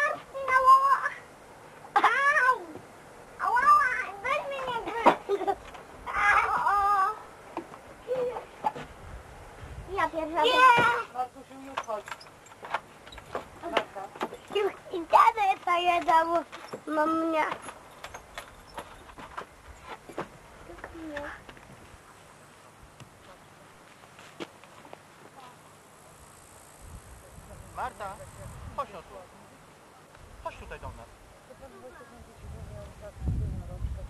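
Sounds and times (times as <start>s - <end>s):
child's high-pitched call: 0.0s - 1.3s, 2.0s - 2.8s, 3.4s - 5.0s, 6.1s - 7.3s.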